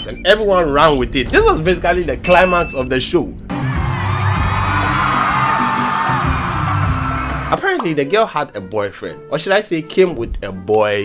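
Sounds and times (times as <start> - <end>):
crowd cheering and screaming: 3.5 - 7.5.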